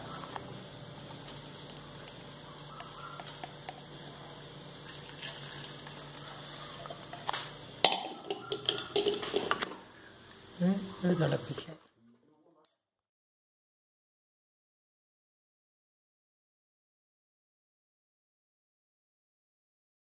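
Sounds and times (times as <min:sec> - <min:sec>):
low kitchen hum: 0:00.0 - 0:12.7
syrup trickling through strainer: 0:04.8 - 0:07.4
kitchen utensils clattering: 0:06.8 - 0:09.8.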